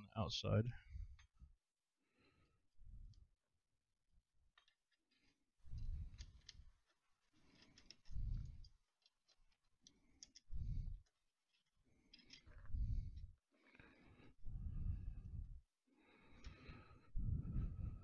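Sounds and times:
muffled low rumble: 17.2s - 18.0s.

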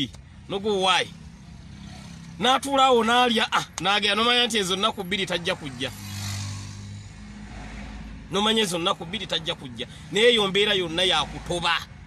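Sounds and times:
vehicle passing by: 1.2s - 2.4s, 4.8s - 10.4s.

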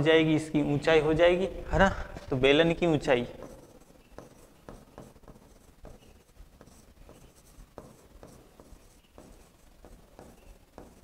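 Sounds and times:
pen scratching on screen: 3.2s - 11.0s
pen tapping on screen: 3.4s - 11.0s.

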